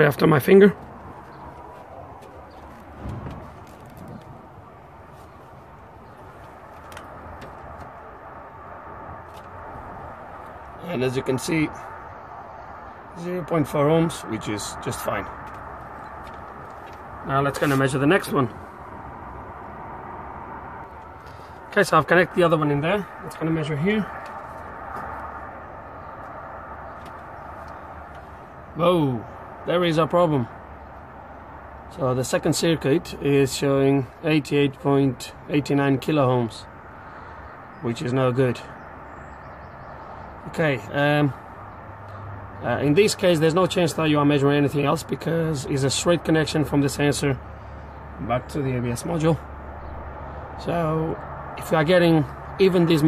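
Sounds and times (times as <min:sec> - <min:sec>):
outdoor background noise: 0:00.0 - 0:53.0
low rumble: 0:00.8 - 0:08.7
soft thump: 0:03.0 - 0:04.2.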